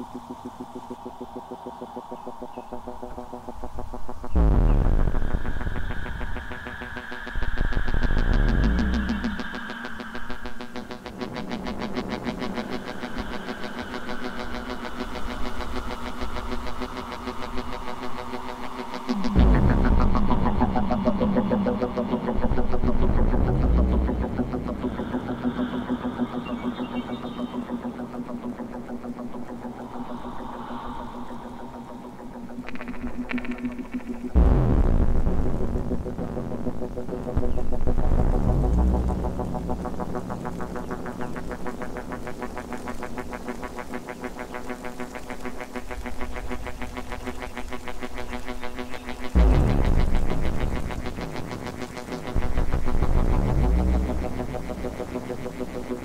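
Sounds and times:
synthesizer drone tones: 0:00.0 - 0:56.0
fast pulsing synth texture: 0:03.0 - 0:35.0, 0:37.3 - 0:56.0
deep bass swells sweeping down: 0:04.4 - 0:12.7, 0:19.0 - 0:28.6, 0:34.4 - 0:41.6, 0:49.4 - 0:56.0.

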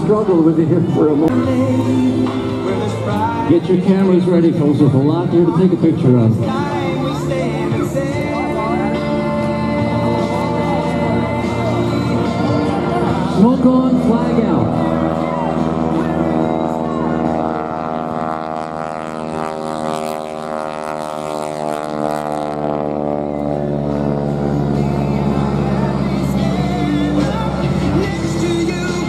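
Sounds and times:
background music: 0:00.0 - 0:29.0
biplane engine and propeller droning: 0:00.0 - 0:29.0.

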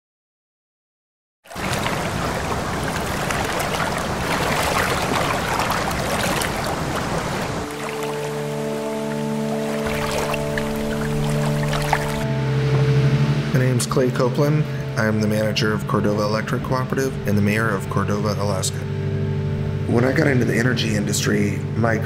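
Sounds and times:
rushing churning water: 0:01.5 - 0:12.3
music with long held chords: 0:01.5 - 0:22.0.

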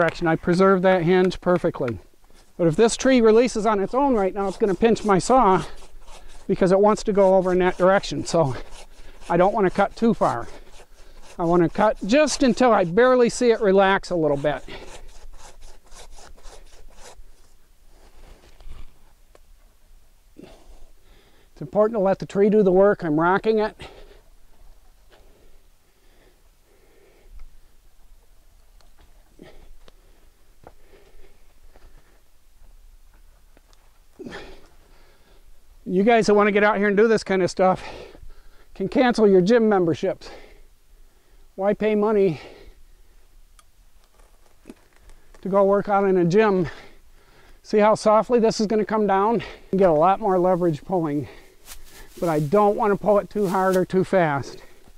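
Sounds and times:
hand saw cutting wood: 0:02.8 - 0:17.2
wood cracking and branches rustling: 0:43.9 - 0:45.6, 0:49.7 - 0:54.9.

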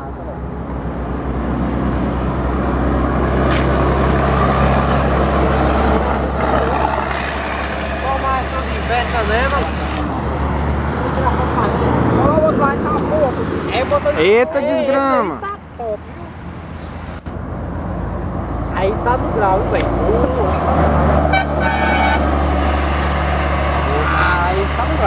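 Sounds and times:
truck diesel engine driving past: 0:00.0 - 0:14.4, 0:17.4 - 0:25.0
voices calling out: 0:02.0 - 0:17.1.

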